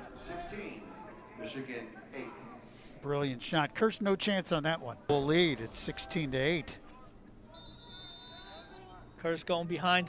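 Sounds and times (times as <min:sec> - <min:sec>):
faint referee whistle: 0:07.5 - 0:09.1.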